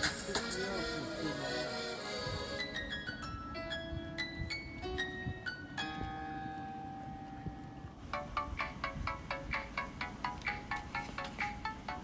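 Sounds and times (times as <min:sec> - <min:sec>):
held chord ringing: 0:00.5 - 0:10.4.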